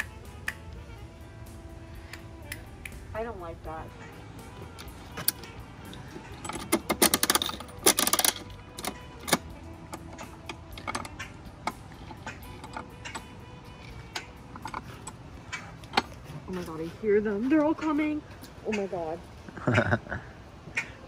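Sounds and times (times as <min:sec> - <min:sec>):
crank ratcheting clicks: 0:04.7 - 0:16.1.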